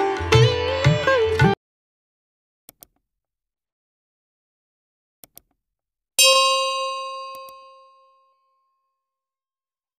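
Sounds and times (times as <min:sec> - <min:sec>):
bright bell ding: 0:06.2 - 0:08.9.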